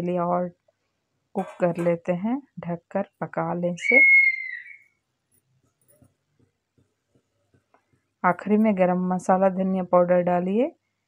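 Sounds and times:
high whistling tone: 3.8s - 4.9s.

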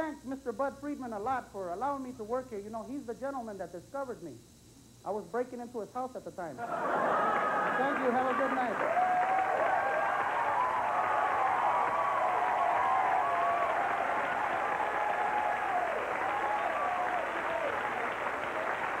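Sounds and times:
audience applauding: 6.9s - 19.0s.

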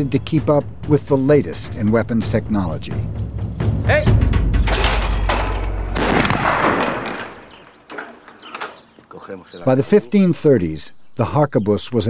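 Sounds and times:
black powder gunshots: 4.7s - 7.9s.

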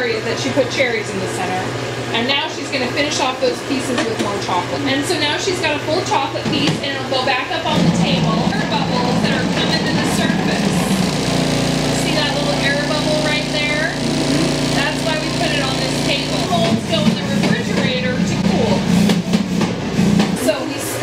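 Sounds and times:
vibrating table humming: 6.5s - 19.4s
murmur of voices: 12.0s - 18.6s.

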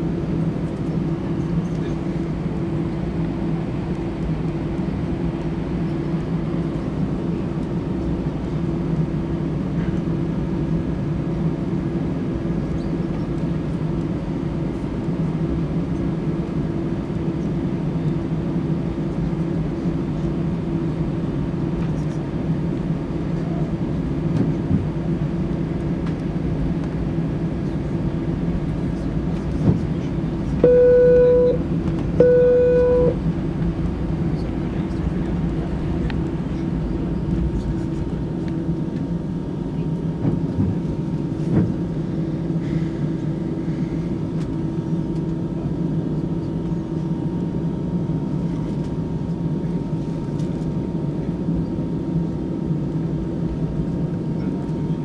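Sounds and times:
airplane cabin hum: 0.0s - 55.0s
flat beeps: 30.6s - 31.6s, 32.2s - 33.2s.

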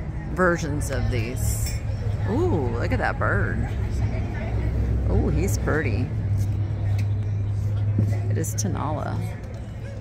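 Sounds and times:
faint background voices: 0.0s - 10.0s.

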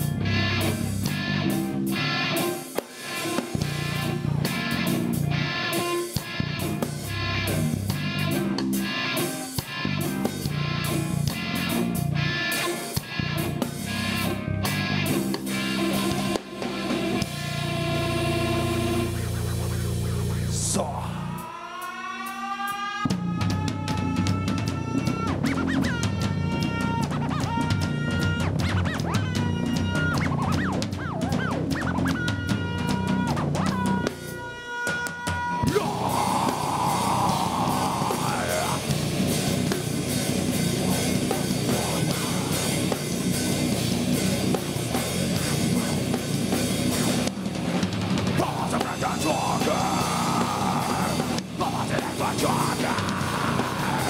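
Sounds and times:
electric guitar bending notes: 0.0s - 54.0s
heavy rock band playing: 0.0s - 54.0s.

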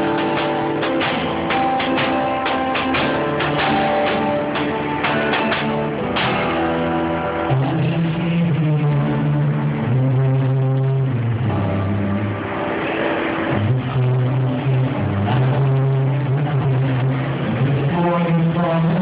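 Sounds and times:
acoustic guitar: 0.0s - 19.0s.

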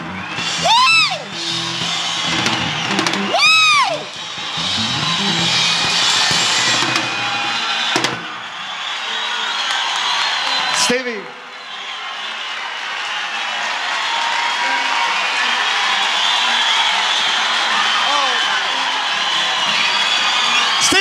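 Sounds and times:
salsa band playing: 0.0s - 8.5s
loud rising-and-falling whoops: 0.0s - 10.8s, 11.5s - 21.0s
audience cheering: 0.0s - 21.0s.

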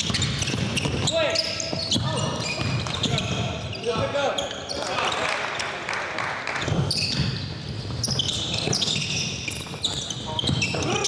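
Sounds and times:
basketball bouncing on wooden floor: 0.0s - 1.1s, 1.7s - 4.1s
sneaker squeaks: 0.0s - 5.7s, 6.6s - 11.0s
players' voices: 0.9s - 6.9s.

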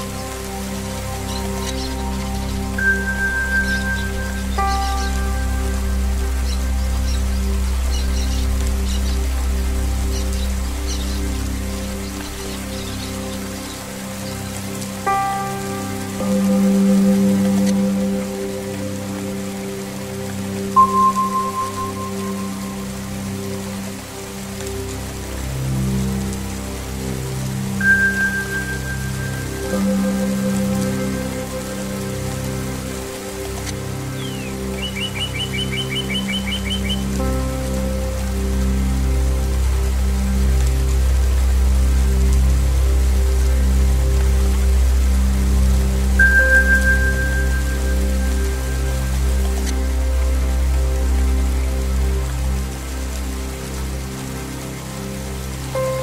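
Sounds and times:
low sustained drone: 0.0s - 56.0s
rain falling and splashing: 0.0s - 56.0s
bird trill: 2.8s - 5.4s, 34.2s - 37.0s.

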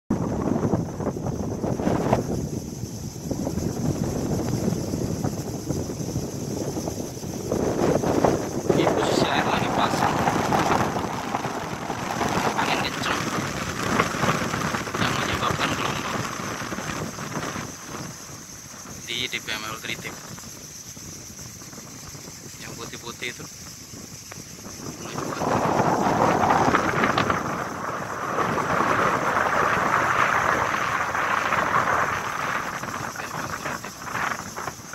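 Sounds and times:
gusty wind buffeting microphone: 0.1s - 34.9s
waves washing on choppy water: 1.6s - 21.0s, 24.8s - 34.9s.

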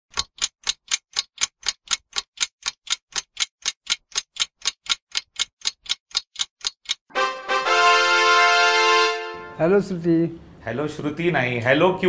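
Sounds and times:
clock ticking fast: 0.1s - 7.5s.

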